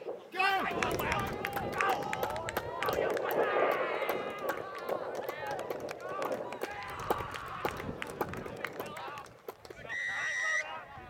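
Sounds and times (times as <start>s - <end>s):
spectators shouting and cheering: 0.2s - 11.0s.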